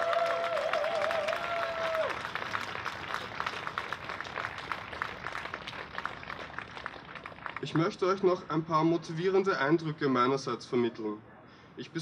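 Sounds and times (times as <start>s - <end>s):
audience applause: 0.0s - 7.8s.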